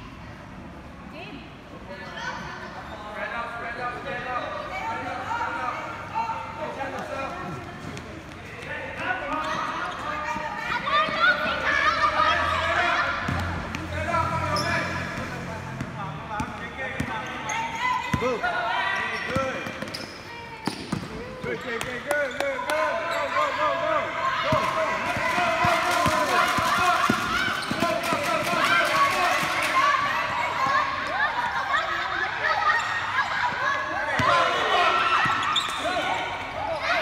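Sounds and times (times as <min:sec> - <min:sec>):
children and spectators shouting: 0:10.7 - 0:13.4, 0:23.2 - 0:37.0
basketball bouncing on a court: 0:24.5 - 0:28.8.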